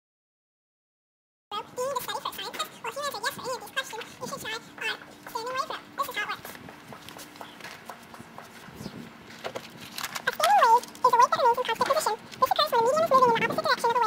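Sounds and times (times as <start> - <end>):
girls talking: 1.5 - 6.7, 10.2 - 14.0.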